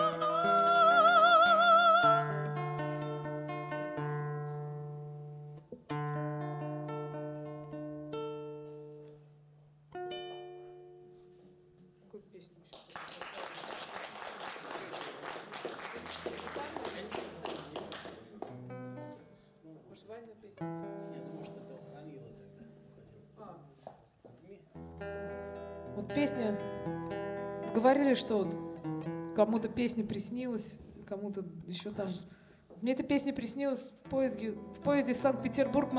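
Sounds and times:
acoustic guitar chords: 0:00.0 - 0:11.8, 0:20.6 - 0:23.4, 0:24.8 - 0:31.0, 0:33.4 - 0:35.9
audience applauding: 0:12.7 - 0:18.6.

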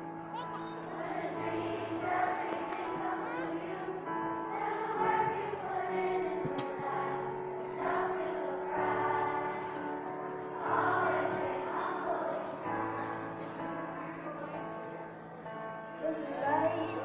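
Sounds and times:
musical accompaniment: 0:00.0 - 0:14.1
children's choir singing: 0:00.0 - 0:17.0.

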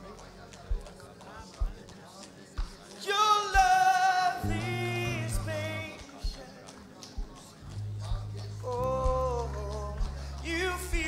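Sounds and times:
soft low drum beat: 0:00.0 - 0:01.9, 0:04.4 - 0:06.5, 0:07.1 - 0:11.0.

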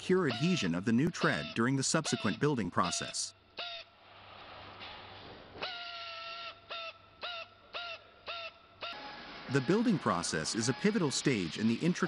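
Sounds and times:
rotary grinding tool whining: 0:08.9 - 0:12.0.

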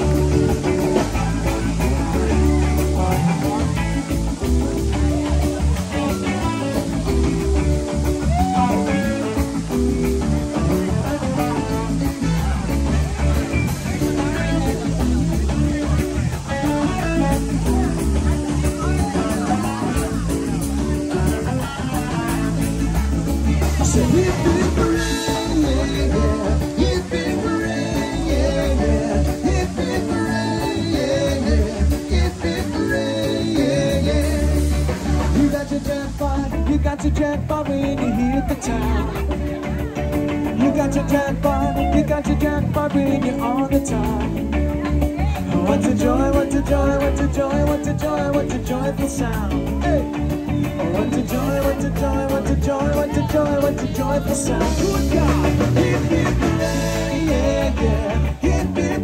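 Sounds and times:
bass line: 0:00.0 - 0:59.0
drums: 0:00.0 - 0:59.0
lead guitar: 0:00.0 - 0:59.0
live rock band playing: 0:00.0 - 0:59.0.

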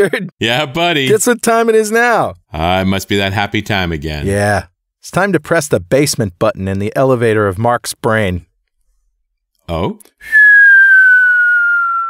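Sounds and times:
downward sliding whistle: 0:10.2 - 0:12.0.

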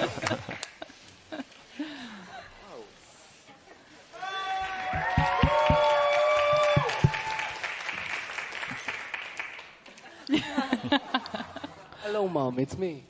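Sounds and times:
voices cheering together: 0:04.2 - 0:07.7
applause: 0:04.6 - 0:10.2.

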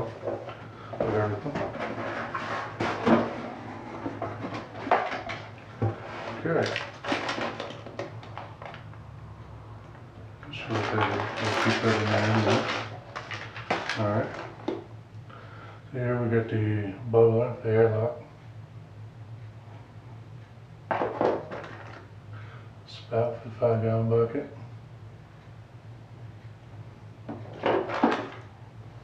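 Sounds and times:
packing paper crinkling: 0:06.4 - 0:08.8, 0:10.5 - 0:14.6.

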